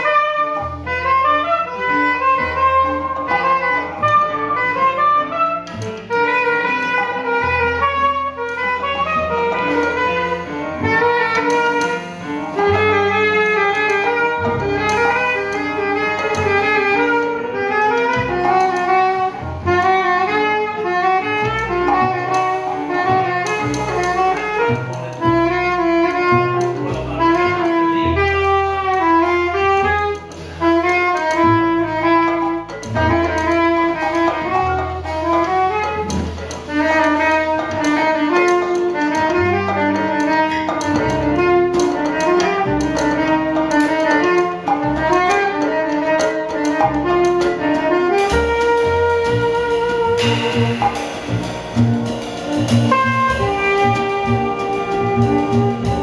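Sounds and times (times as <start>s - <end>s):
double bass: 0.0s - 56.0s
soprano saxophone melody: 0.0s - 56.0s
drums: 47.1s - 56.0s.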